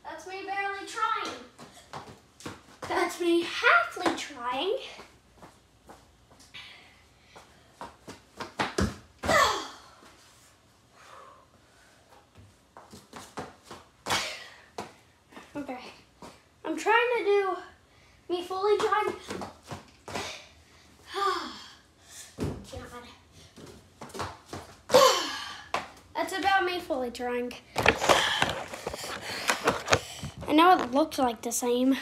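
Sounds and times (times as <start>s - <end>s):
boy's effortful cry: 9.2s - 9.9s
running footsteps on floor: 27.8s - 31.0s.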